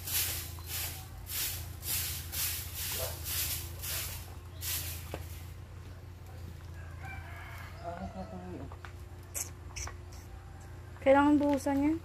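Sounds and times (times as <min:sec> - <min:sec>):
broom sweeping ground: 0:00.0 - 0:06.6
faint rooster crowing: 0:06.2 - 0:08.9, 0:10.2 - 0:11.0.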